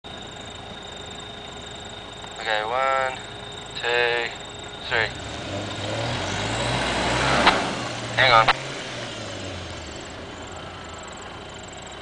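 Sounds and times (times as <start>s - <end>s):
high-pitched tone: 0.0s - 8.6s
engines idling: 0.0s - 12.0s.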